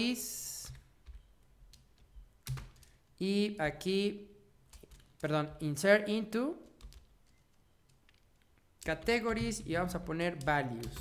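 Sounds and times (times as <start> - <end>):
faint keyboard keystrokes: 6.6 - 11.0.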